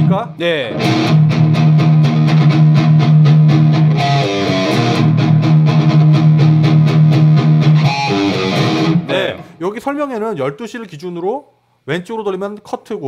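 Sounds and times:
overdriven electric guitar riff: 0.0s - 9.6s.

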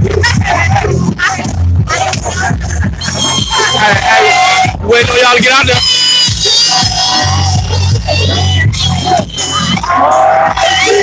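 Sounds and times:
loud music with heavy bass and vocals: 0.0s - 11.0s.

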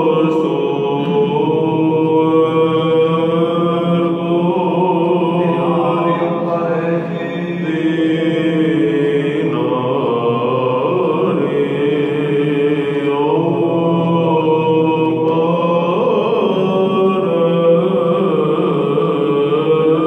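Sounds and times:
man chanting: 2.3s - 12.5s.

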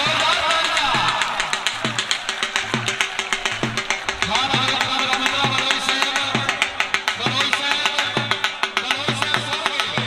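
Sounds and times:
fast drum music: 0.0s - 10.0s.

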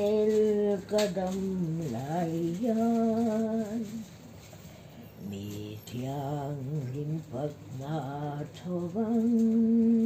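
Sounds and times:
elderly woman singing: 0.0s - 10.0s.

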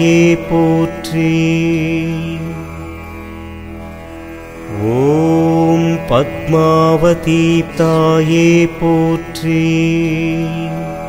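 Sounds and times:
man chanting a mantra: 0.0s - 2.6s, 4.7s - 11.0s.

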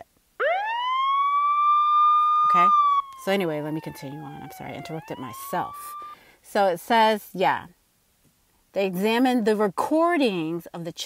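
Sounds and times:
siren winding up: 0.0s - 6.2s.

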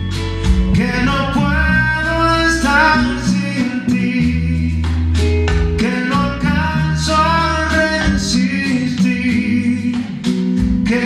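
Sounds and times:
electric bass: 0.0s - 11.0s
electric guitar: 0.0s - 11.0s.

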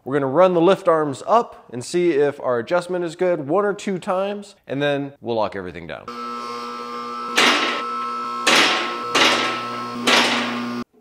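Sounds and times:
hydraulic power unit running: 6.1s - 10.9s.

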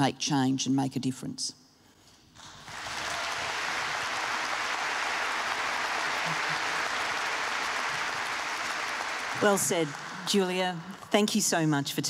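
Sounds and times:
large audience applauding: 2.4s - 11.2s.

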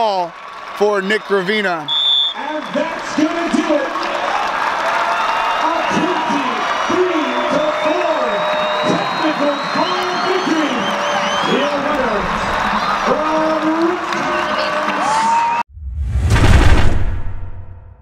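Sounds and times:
stadium crowd cheering and shouting: 0.0s - 15.7s
logo sting with deep low end: 15.7s - 18.0s.

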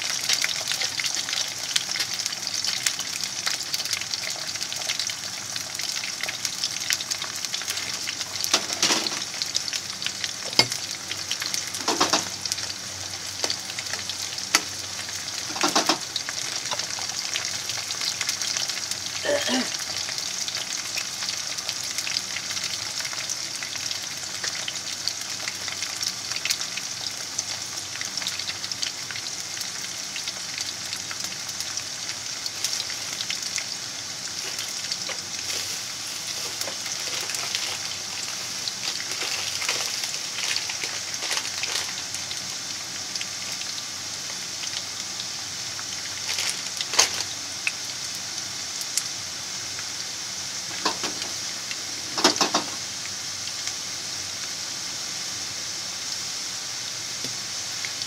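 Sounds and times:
potato sticks sizzling in oil: 0.0s - 58.0s.

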